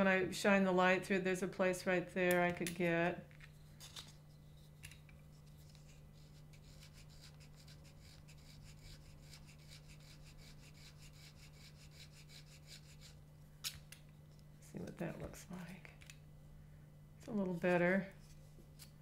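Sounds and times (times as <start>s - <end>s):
knife scraping cane: 3.6s - 13.2s.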